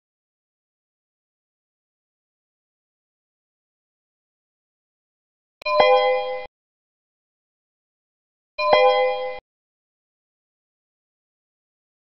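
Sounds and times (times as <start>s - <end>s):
electronic computer chime: 8.6s - 9.4s.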